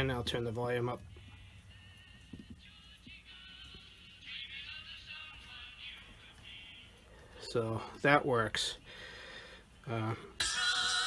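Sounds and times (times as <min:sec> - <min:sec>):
tinny radio music with singing: 0:00.0 - 0:11.0.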